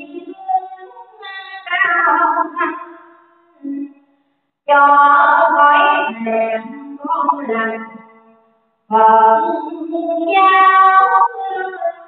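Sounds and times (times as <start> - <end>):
high singing voice: 0.0 - 4.1, 4.7 - 12.0.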